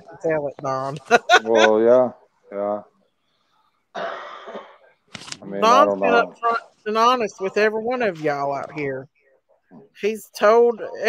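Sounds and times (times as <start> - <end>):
man coughing: 4.0 - 4.8.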